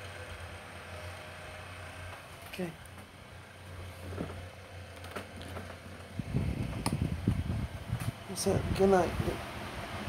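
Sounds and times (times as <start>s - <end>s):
fan running: 0.0s - 10.0s
fan clicks: 4.2s - 9.5s.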